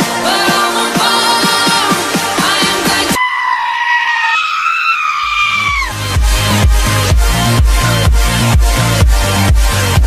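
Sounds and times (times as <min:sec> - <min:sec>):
pop track: 0:00.0 - 0:03.3, 0:05.2 - 0:10.0
goat screaming: 0:03.2 - 0:06.0
heavy bass beat: 0:05.7 - 0:10.0.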